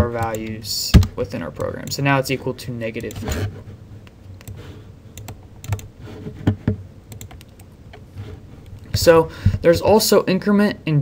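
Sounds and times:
computer keyboard keys clicking: 5.2s - 5.9s, 7.1s - 7.7s.

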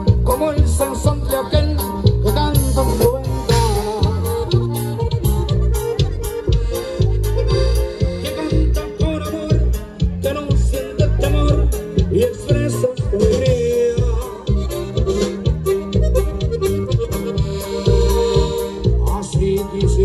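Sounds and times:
accordion: 0.0s - 20.0s
bass and percussion beat: 0.0s - 20.0s
live band music: 0.0s - 20.0s.

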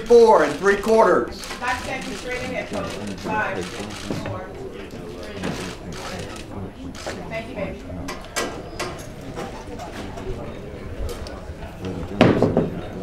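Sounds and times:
indistinct chatter of voices: 0.0s - 13.0s.

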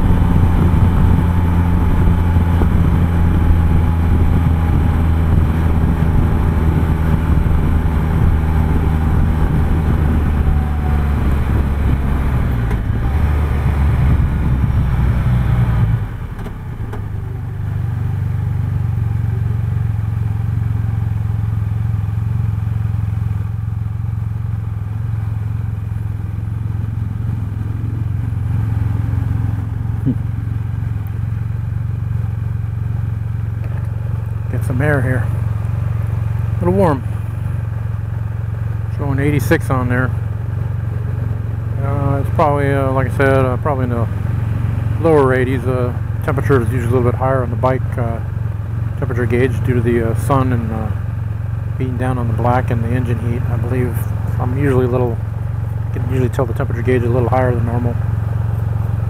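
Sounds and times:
wind noise: 0.0s - 17.0s
motorcycle engine running: 0.0s - 59.0s.

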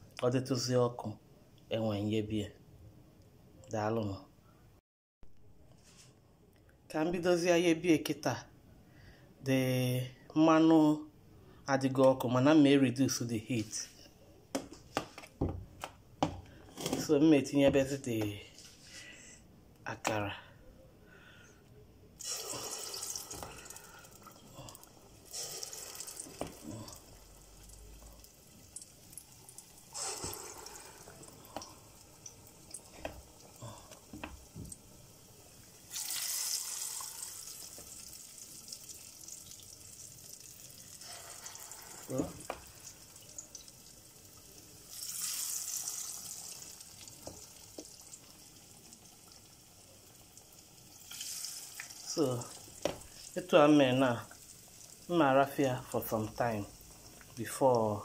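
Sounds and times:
batter sizzling in hot oil: 22.2s - 57.6s
oil bubbling: 22.2s - 58.0s.

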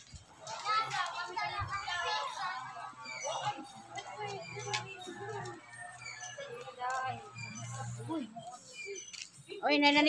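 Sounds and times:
high-pitched voices talking: 0.3s - 10.0s.

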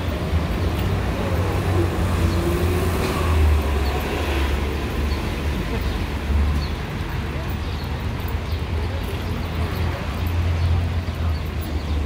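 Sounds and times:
passing cars rumble: 0.0s - 12.0s.

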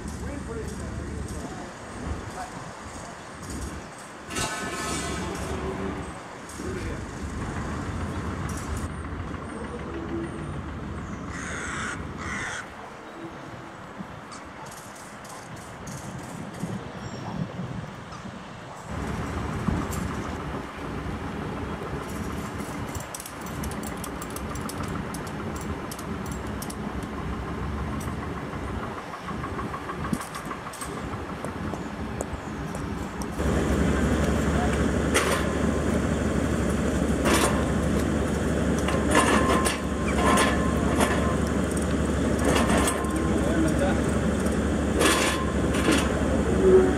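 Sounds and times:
steady engine hum: 0.0s - 17.0s, 18.4s - 46.9s.

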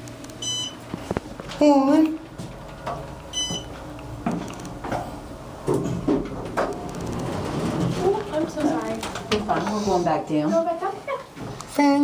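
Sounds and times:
short electronic beep: 0.4s - 0.8s, 3.3s - 3.7s
elevator doors knocking and clunking: 2.2s - 9.8s.

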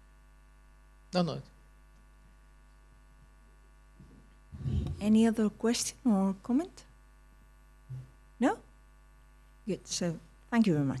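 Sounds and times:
faint electrical mains hum: 0.0s - 11.0s
low thud on microphone: 4.6s - 5.2s.

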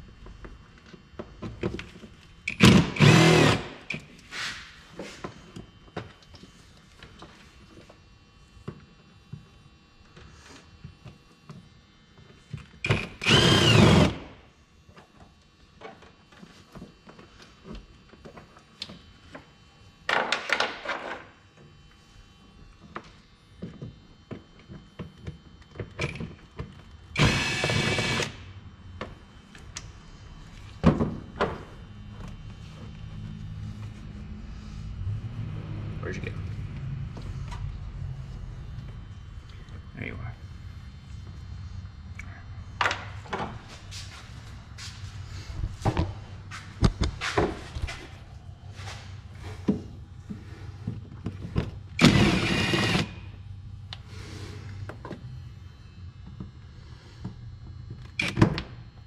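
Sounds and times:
cordless drill spinning out bolts: 2.5s - 4.0s, 12.8s - 14.3s, 27.2s - 28.4s, 52.0s - 53.2s.

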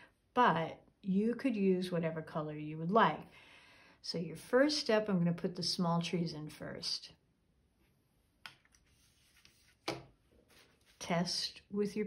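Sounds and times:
brush taps: 8.4s - 10.8s.

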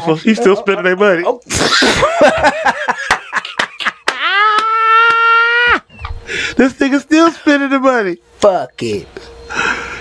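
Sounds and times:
laughter: 0.4s - 4.8s
man exclaiming ooh: 4.2s - 5.8s.

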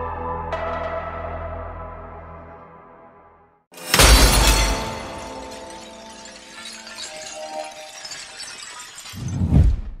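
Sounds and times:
glass breaking and shards tinkling: 3.8s - 9.5s.

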